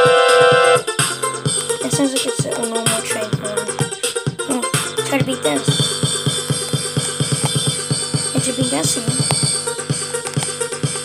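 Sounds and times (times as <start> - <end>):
fast drum beat music: 0.0 - 11.0.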